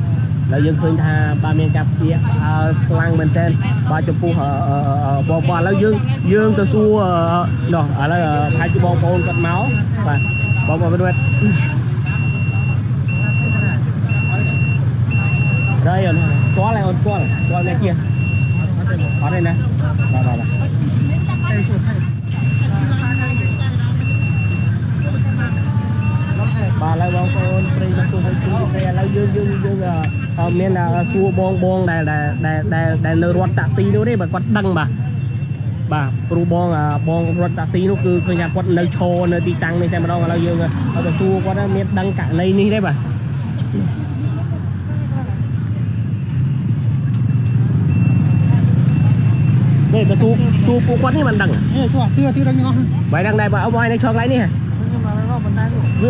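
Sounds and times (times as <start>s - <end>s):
people talking: 0.0s - 35.1s, 35.9s - 46.1s, 48.3s - 56.0s
electronic beeper: 0.0s - 44.4s, 45.3s - 56.0s
low engine rumble: 0.0s - 56.0s.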